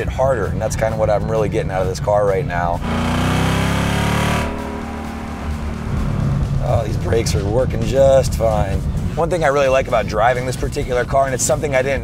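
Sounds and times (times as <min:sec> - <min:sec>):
car engine slowing: 0:02.6 - 0:08.9
car engine revving hard: 0:02.8 - 0:07.4.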